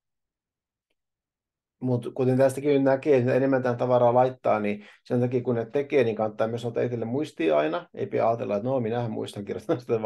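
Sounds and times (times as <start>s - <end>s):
man speaking: 1.8s - 10.0s.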